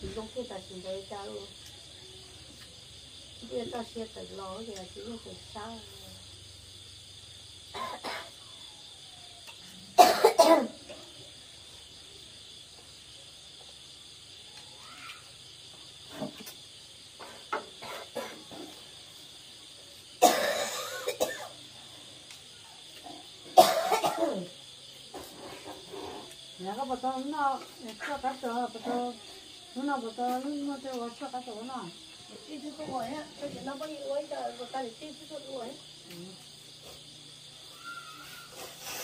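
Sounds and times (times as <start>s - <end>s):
person coughing: 10.0s - 10.7s, 20.2s - 21.5s, 23.6s - 24.4s
high-pitched insect drone: 35.8s - 39.0s.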